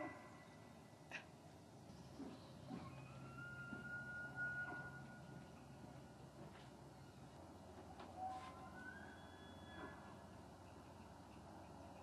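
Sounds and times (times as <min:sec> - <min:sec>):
distant elk bugle: 0:08.1 - 0:10.1.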